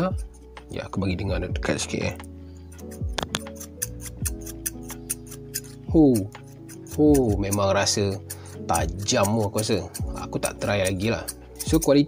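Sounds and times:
scissors snipping: 1.7 - 12.0.

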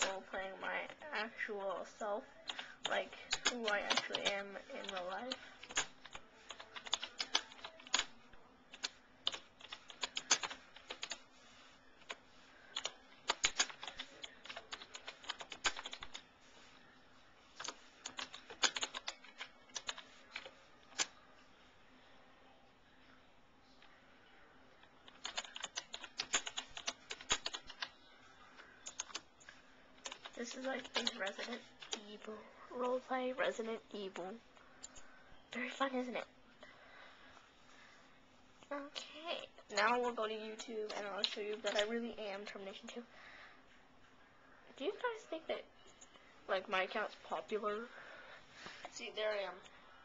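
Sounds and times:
typing on computer keyboard: 2.5 - 8.1, 8.7 - 11.2, 12.0 - 16.2, 17.6 - 21.1, 25.0 - 27.9, 28.8 - 29.3, 30.0 - 32.0.

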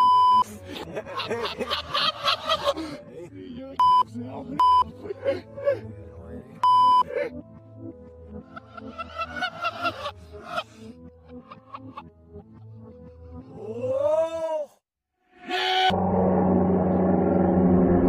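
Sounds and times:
speech: 3.0 - 4.6.

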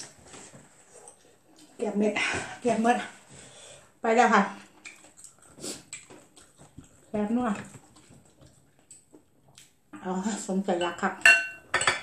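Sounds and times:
woman speaking: 1.8 - 3.2, 4.0 - 4.7, 7.1 - 7.7, 10.0 - 11.3
eating mouth clicks and smacks: 4.7 - 9.8.

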